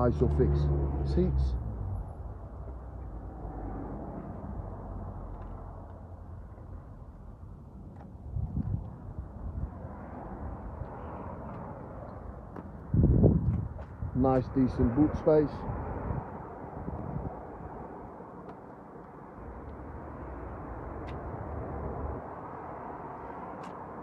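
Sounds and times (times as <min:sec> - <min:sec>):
wind buffeting microphone: 0:08.2 - 0:18.2.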